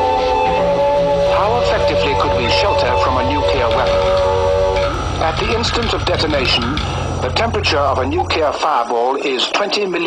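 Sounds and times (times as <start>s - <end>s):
held musical chord: 0.0s - 8.6s
narrator speaking: 1.3s - 4.2s, 5.2s - 10.0s.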